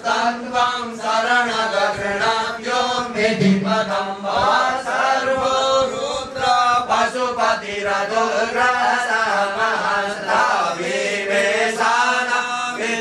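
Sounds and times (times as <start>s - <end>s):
man chanting mantras: 0.0s - 13.0s.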